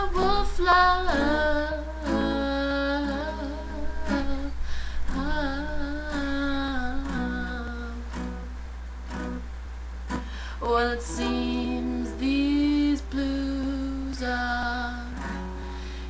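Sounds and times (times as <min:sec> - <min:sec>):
strummed acoustic guitar: 0:00.0 - 0:16.0.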